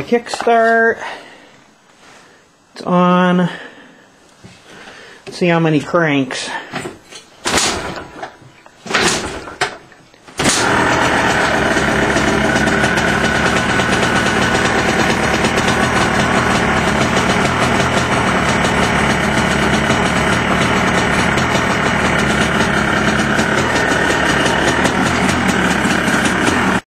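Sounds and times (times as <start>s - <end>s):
kick starter: 7.5s - 9.8s, 10.4s - 26.8s
two-stroke engine running: 10.4s - 26.8s.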